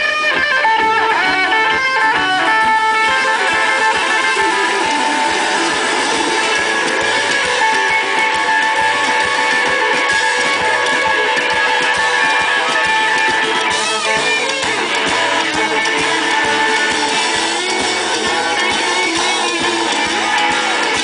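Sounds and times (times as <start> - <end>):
bass guitar: 0.0 - 21.0
drums: 0.0 - 21.0
electric guitar lead line: 0.0 - 21.0.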